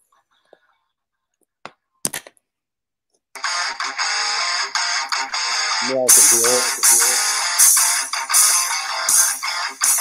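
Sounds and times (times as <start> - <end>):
guitar-driven intro music: 3.4 - 10.0.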